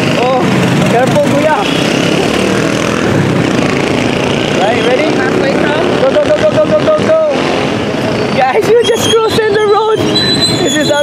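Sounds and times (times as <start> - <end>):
cars passing: 0.0 - 11.0
motorcycle engines: 0.0 - 11.0.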